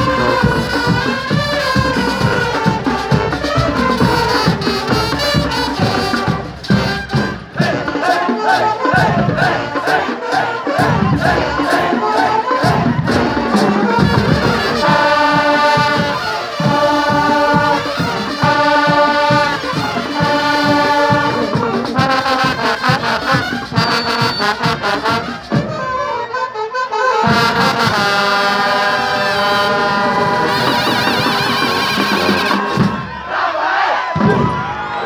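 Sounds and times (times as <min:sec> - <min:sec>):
crowd shouting and cheering: 0:00.0 - 0:35.0
marching brass band playing: 0:00.0 - 0:35.0.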